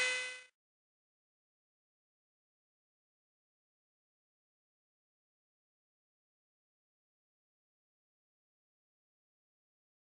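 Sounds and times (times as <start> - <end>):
machine whine: 0.0 - 0.5.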